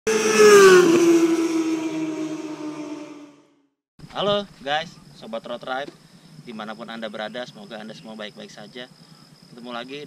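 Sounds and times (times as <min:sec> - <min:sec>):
fast vehicle passing by: 0:00.1 - 0:03.5.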